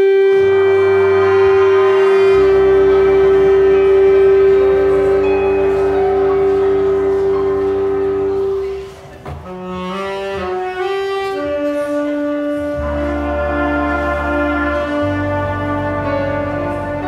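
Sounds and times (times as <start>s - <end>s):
jazz big band chord: 0.0s - 17.0s.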